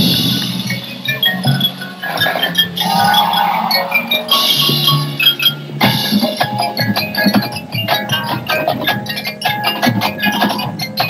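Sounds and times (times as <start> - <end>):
marimba mallet notes: 0.0 - 11.0.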